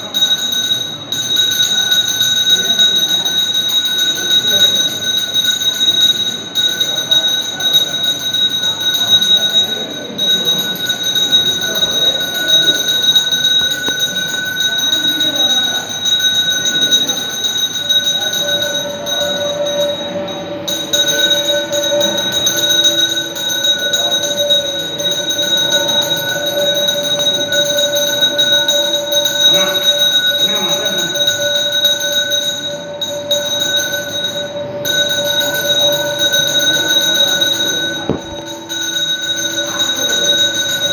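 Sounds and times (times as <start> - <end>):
low held tone: 0.0 - 40.9
temple bells ringing: 0.0 - 40.9.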